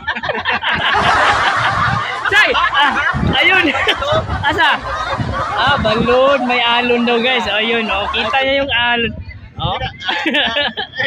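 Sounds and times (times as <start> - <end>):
men laughing: 0.0 - 9.0, 9.6 - 11.0.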